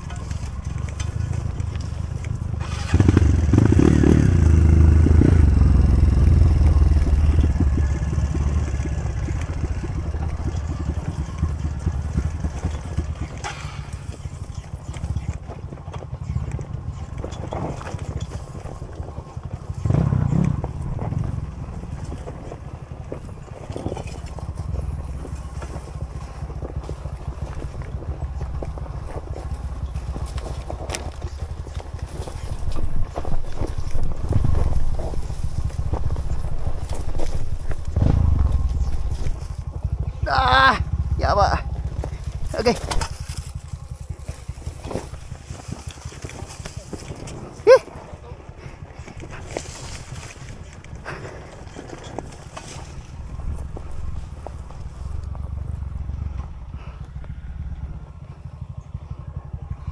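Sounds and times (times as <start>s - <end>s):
dirt bike engine revving: 0.0s - 15.6s, 16.2s - 59.9s
bike knocking over rocks: 6.6s - 40.2s, 41.8s - 48.0s.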